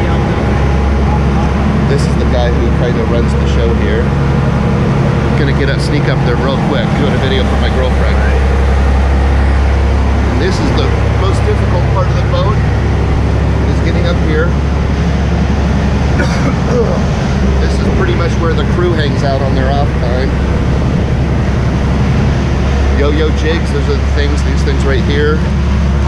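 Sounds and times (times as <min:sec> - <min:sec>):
indistinct voices: 0:00.0 - 0:25.5
diesel boat engine drone: 0:00.0 - 0:26.0.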